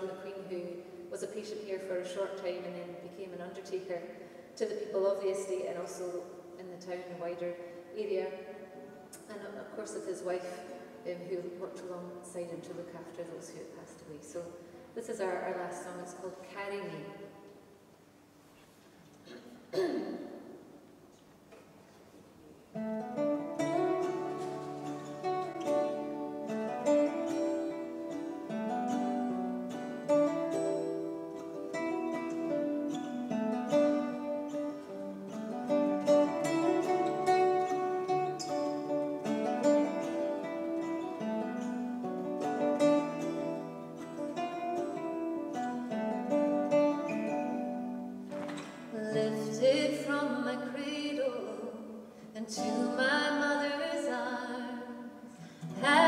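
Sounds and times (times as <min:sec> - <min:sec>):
person clearing throat: 0:19.2 - 0:20.4
acoustic guitars playing: 0:20.3 - 0:56.0
woman singing: 0:48.9 - 0:55.1, 0:55.7 - 0:56.0.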